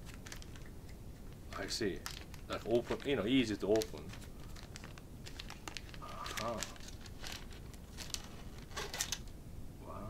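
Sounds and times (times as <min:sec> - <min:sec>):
paper and plastic crinkling: 0:00.0 - 0:00.7, 0:01.5 - 0:09.3.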